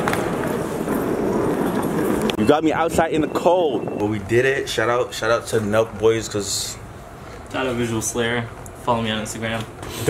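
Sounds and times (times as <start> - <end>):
suitcase rolling on stone floor: 0.0 - 3.6.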